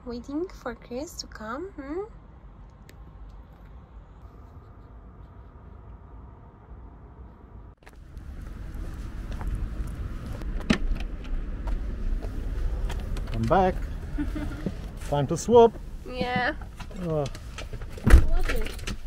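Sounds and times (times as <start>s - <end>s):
road traffic rumbling: 0.0s - 19.0s.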